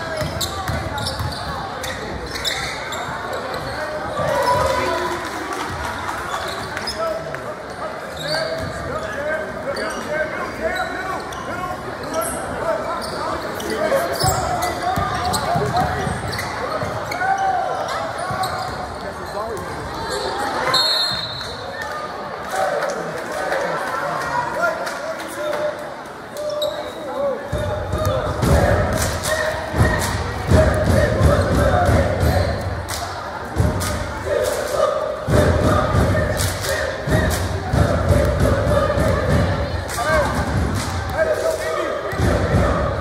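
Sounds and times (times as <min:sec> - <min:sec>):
basketball bouncing on court: 0:00.0 - 0:01.9, 0:14.3 - 0:17.2, 0:37.1 - 0:39.7
people calling out and chattering: 0:00.0 - 0:43.0.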